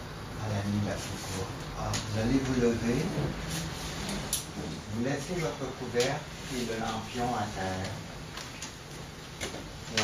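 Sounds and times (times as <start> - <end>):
person speaking: 0.4 - 8.2.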